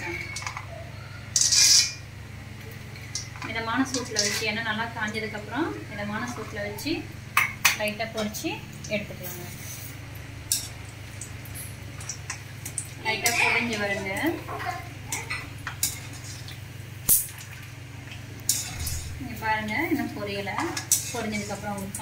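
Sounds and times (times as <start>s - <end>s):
metal strainer clinking against pan: 18.5s - 19.1s, 20.6s - 22.0s.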